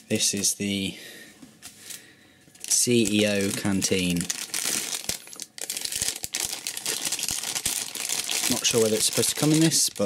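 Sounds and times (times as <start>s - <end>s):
plastic bag crinkling: 2.6s - 10.0s.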